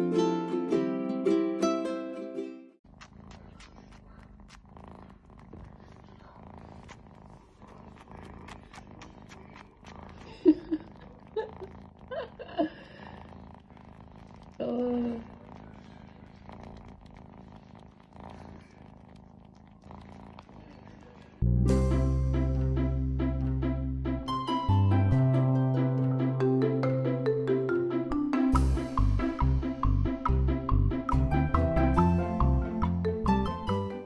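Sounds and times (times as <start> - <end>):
kitten purring: 2.8 - 25.1, 28.5 - 34.0.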